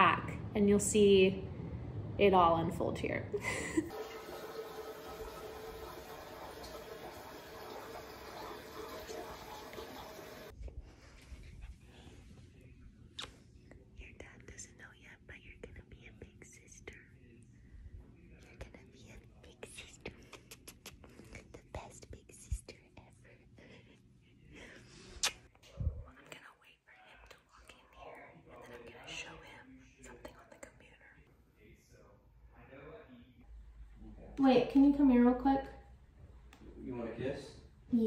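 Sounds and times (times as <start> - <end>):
woman whispering: 13.9 - 17.4, 18.3 - 24.7, 25.7 - 31.3.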